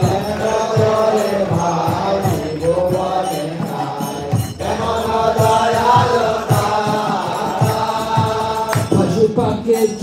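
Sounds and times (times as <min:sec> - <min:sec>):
drum beats: 0:00.0 - 0:10.0
voices chanting to a melody: 0:00.0 - 0:10.0.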